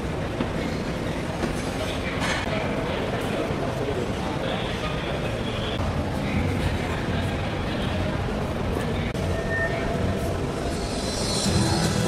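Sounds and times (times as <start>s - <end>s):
indistinct crowd noise: 0.0s - 12.0s
rumbling hall background noise: 0.0s - 12.0s.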